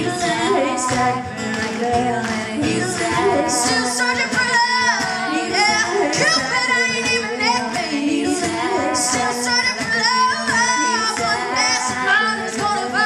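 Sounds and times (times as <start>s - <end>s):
hand claps: 0.0s - 13.0s
women singing in harmony: 0.0s - 13.0s.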